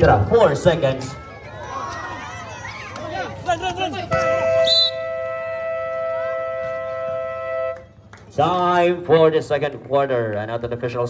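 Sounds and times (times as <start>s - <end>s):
short high whistle blast: 4.2s - 7.7s.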